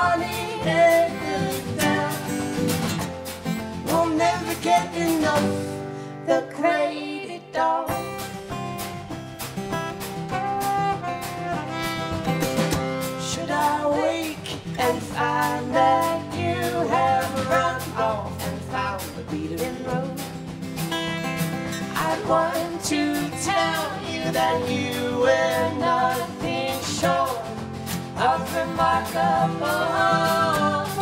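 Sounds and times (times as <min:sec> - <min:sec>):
person singing: 0:00.0 - 0:02.7, 0:03.8 - 0:08.2, 0:13.0 - 0:20.4, 0:21.8 - 0:31.0
strummed acoustic guitar: 0:00.0 - 0:31.0.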